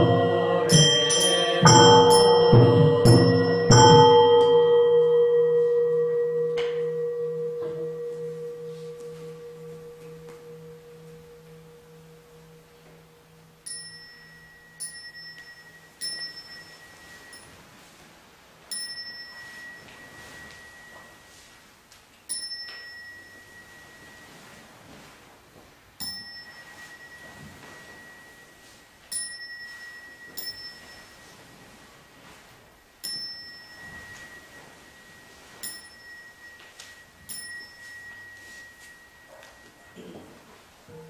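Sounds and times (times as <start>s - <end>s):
small metal bell ringing: 0.0s - 17.8s, 18.7s - 21.5s, 22.3s - 25.1s, 26.0s - 41.0s.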